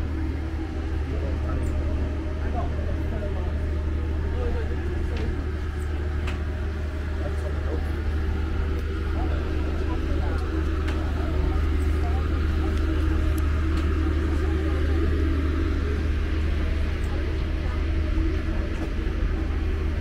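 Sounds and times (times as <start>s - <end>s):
boat engine idling: 0.0s - 20.0s
people talking: 0.0s - 20.0s.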